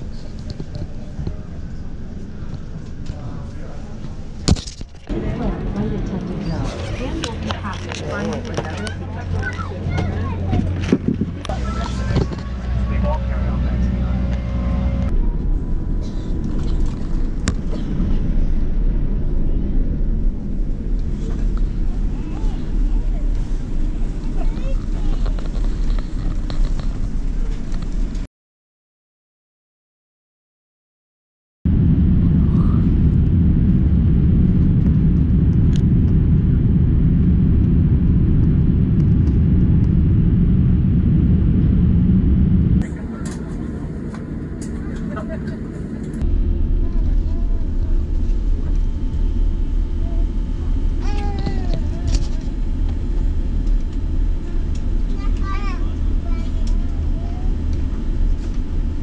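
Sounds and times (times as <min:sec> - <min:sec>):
airliner cabin hum with tones: 0:00.0 - 0:28.3, 0:31.7 - 0:59.0
jet rumbling on the ground: 0:00.0 - 0:28.3, 0:31.7 - 0:59.0.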